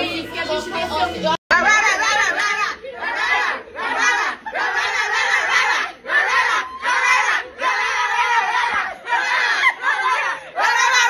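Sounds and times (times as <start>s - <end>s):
women barking like dogs: 1.5s - 11.0s
women laughing: 9.3s - 11.0s.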